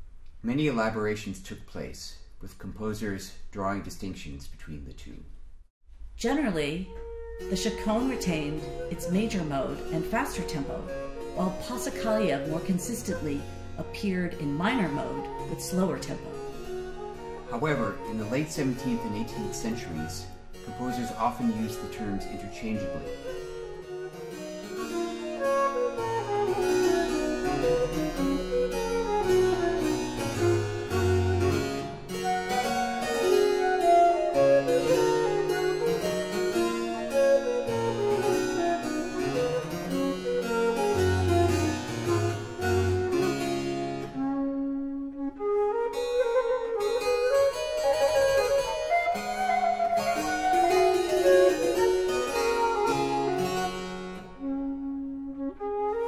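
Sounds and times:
harpsichord: 6.4s - 44.2s, 46.8s - 54.4s
recorder melody: 6.5s - 56.0s.

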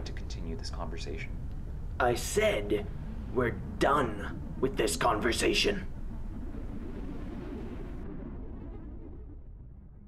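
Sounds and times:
low steady rumbling: 0.0s - 10.0s.

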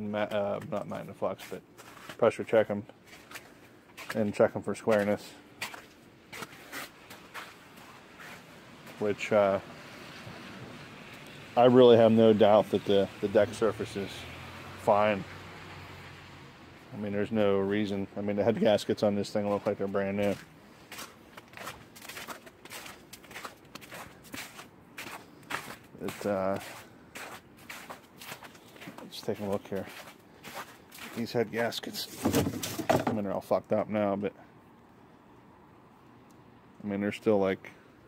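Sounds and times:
faint footsteps on snow: 0.2s - 9.4s, 16.9s - 32.3s.

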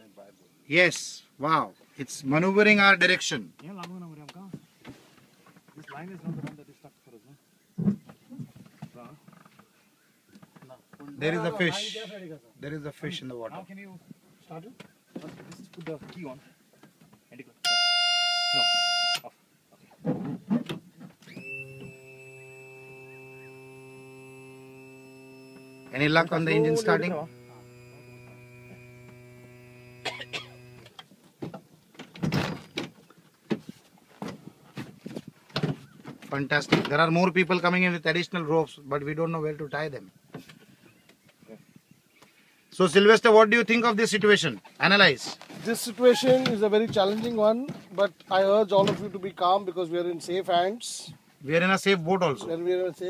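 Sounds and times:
steady electric hum: 21.3s - 31.0s.

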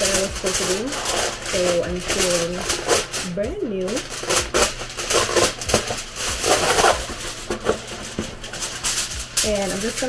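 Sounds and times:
aluminium foil crinkling: 0.0s - 10.0s.

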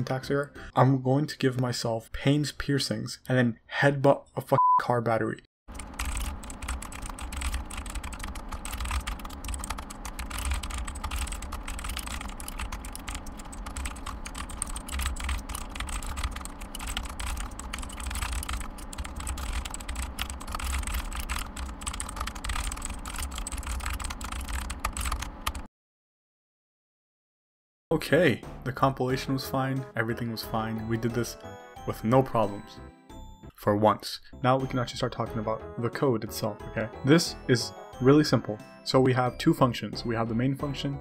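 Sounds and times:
fast typing on keyboard: 5.7s - 25.7s.

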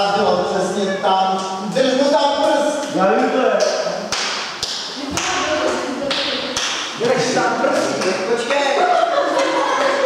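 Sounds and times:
voices chattering: 5.0s - 10.0s.

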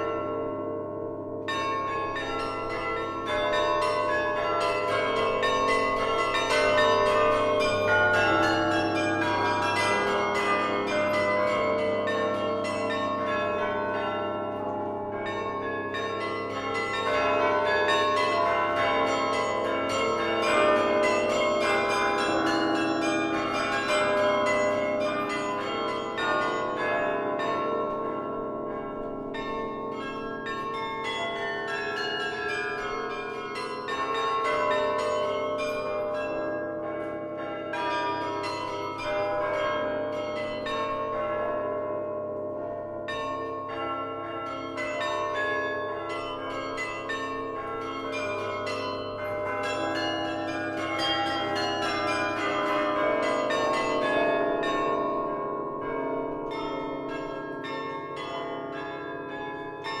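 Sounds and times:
carillon bell melody: 0.0s - 60.0s.

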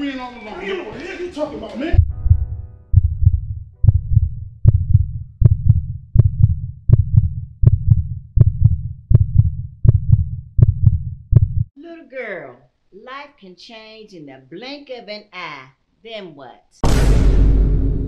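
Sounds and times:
heartbeat double thump: 2.0s - 11.7s.

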